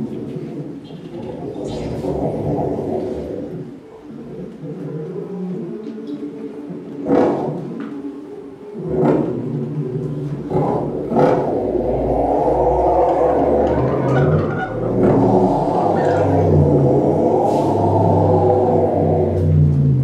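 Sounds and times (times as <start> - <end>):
synthesized electronic drones: 1.2 - 4.6, 6.4 - 20.0
deep low rumble: 9.8 - 20.0.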